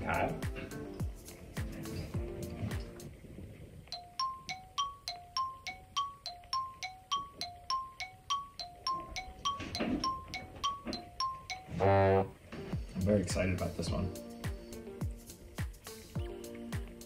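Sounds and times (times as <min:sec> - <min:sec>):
two-note electronic chime: 0:04.0 - 0:12.4.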